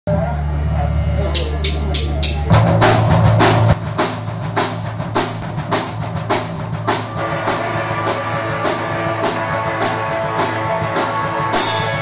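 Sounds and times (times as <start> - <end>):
drum kit beat: 1.3 - 12.0
punk rock band playing: 1.4 - 12.0.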